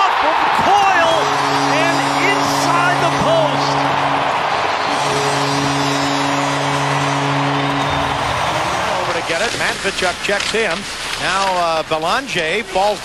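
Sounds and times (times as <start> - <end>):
crowd cheering: 0.0 - 10.0
goal horn blasts: 0.4 - 9.6.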